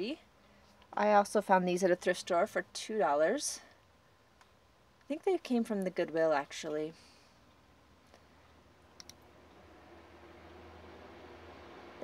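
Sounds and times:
computer mouse clicks: 9.0s - 9.2s.

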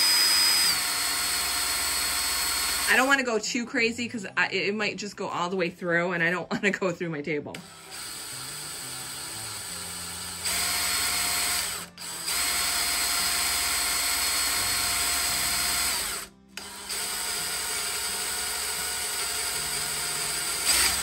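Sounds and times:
cordless drill boring through metal: 0.0s - 3.2s, 7.6s - 21.0s.

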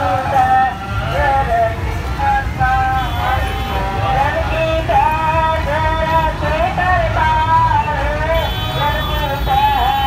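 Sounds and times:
crowd: 0.0s - 10.0s
street traffic rumble: 0.0s - 10.0s.

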